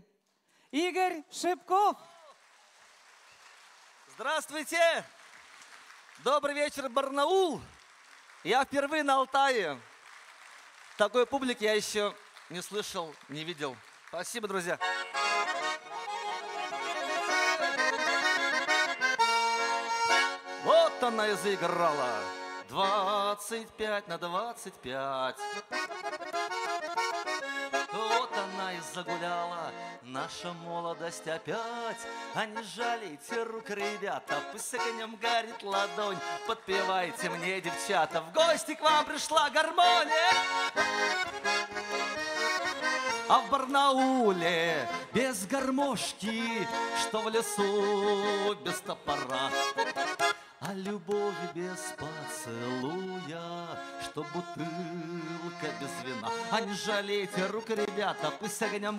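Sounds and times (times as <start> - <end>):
button accordion playing: 14.7 - 24.5, 25.1 - 58.9.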